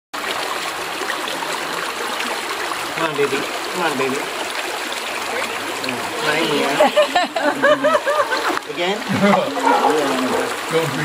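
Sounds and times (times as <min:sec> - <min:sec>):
stream water running over rocks: 0:00.2 - 0:11.0.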